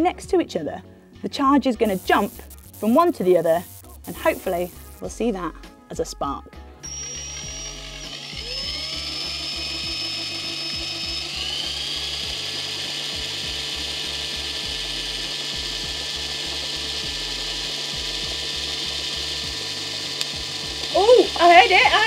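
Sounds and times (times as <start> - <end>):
cordless drill whining: 6.8 - 22.0.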